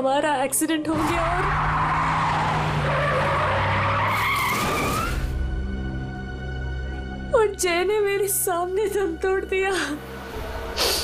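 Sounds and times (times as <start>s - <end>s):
background music: 0.0s - 11.0s
car tyres skidding and squealing: 0.9s - 5.4s.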